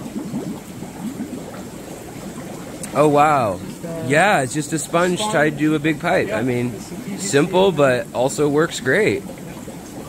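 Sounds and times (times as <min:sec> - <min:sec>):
sponge filter bubbling: 0:00.0 - 0:10.0.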